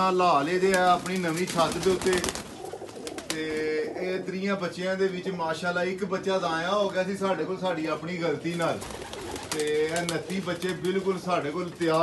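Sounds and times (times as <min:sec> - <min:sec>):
pigeon wing claps: 0:00.6 - 0:03.4, 0:08.8 - 0:11.0
pigeon cooing: 0:01.0 - 0:04.6, 0:08.3 - 0:10.6.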